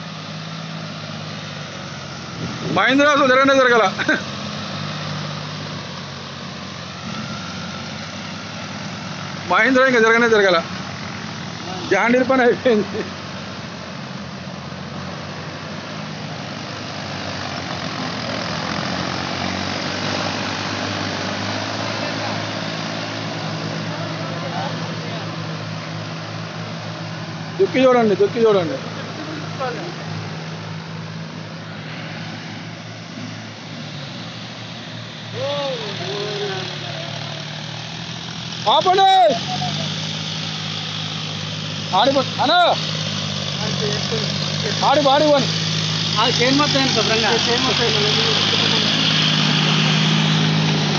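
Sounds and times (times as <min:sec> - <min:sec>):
diesel tractor engines under load: 0:00.0 - 0:50.9.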